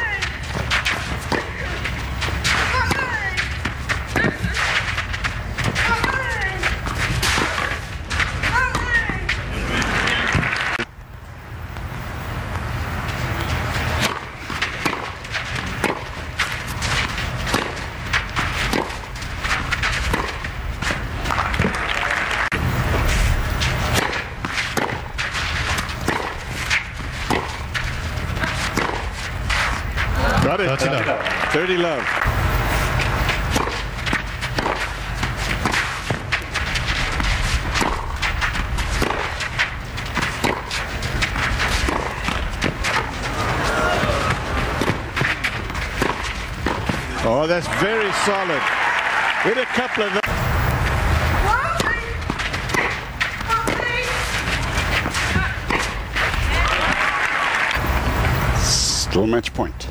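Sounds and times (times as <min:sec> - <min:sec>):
racket striking tennis ball: 0:00.0 - 0:10.9, 0:13.4 - 0:21.9, 0:22.5 - 0:30.6, 0:32.2 - 0:47.3, 0:50.8 - 0:57.0
players grunting: 0:08.5 - 0:10.8, 0:30.0 - 0:32.2, 0:41.8 - 0:50.3.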